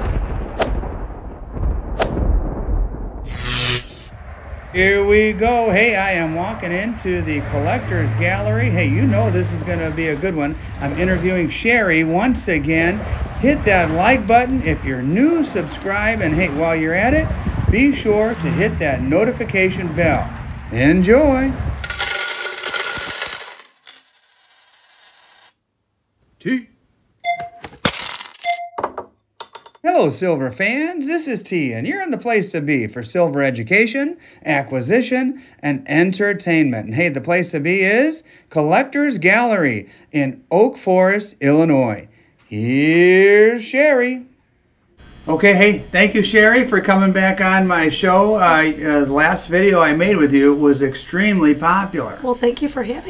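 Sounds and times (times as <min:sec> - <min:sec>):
sharp crack-like hit: 0:00.0 - 0:06.0
sound effect booms: 0:00.0 - 0:07.0
deep rumble: 0:00.0 - 0:19.7
coins pouring and clinking: 0:13.9 - 0:16.9, 0:19.7 - 0:21.0, 0:21.8 - 0:25.5, 0:27.8 - 0:28.6.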